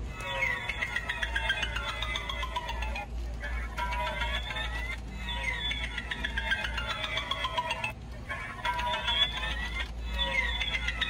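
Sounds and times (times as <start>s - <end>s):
crackly electronic sound effect: 0.0s - 11.0s.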